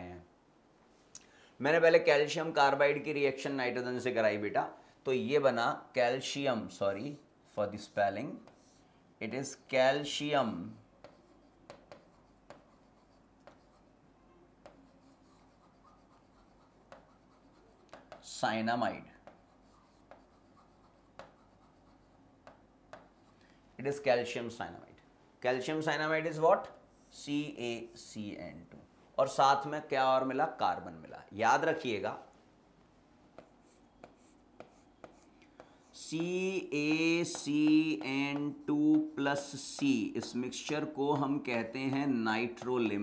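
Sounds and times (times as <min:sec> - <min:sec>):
marker scratching on whiteboard: 0:08.4 - 0:08.9, 0:09.6 - 0:18.4, 0:19.1 - 0:23.4, 0:33.3 - 0:43.0
pen ticks on a board: 0:11.0 - 0:12.8, 0:13.4 - 0:13.8, 0:14.6 - 0:14.9, 0:16.8 - 0:17.2, 0:17.8 - 0:18.3, 0:21.1 - 0:21.6, 0:22.4 - 0:23.2, 0:33.4 - 0:43.0.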